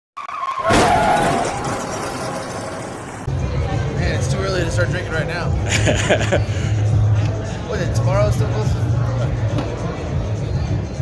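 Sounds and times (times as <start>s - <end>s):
falling tone: 0.2s - 3.5s.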